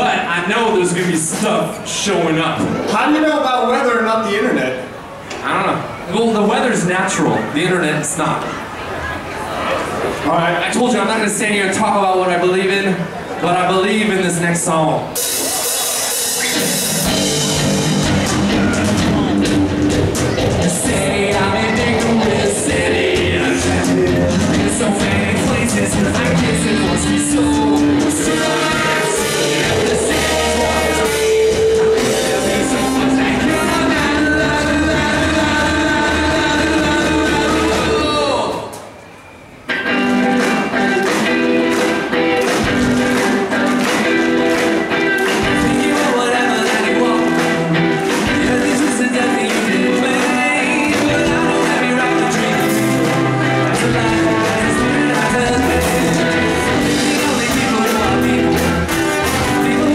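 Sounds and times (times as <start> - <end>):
live rock band: 14.6 - 38.8, 39.6 - 59.9.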